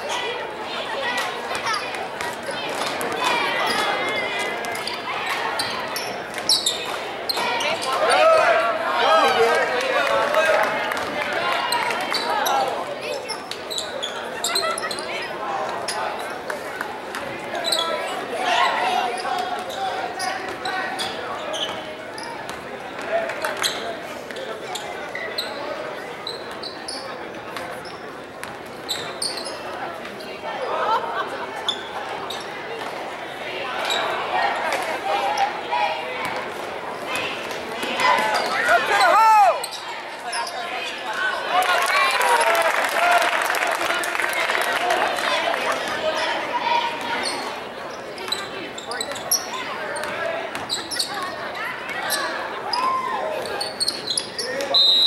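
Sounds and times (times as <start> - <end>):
sneakers squeaking: 1.1 - 8.2, 11.7 - 16.4, 17.1 - 30.4, 31.6 - 32.8, 33.8 - 35.6, 37.1 - 41.2, 45.9 - 55.0
indistinct echoing shouts: 37.1 - 47.5.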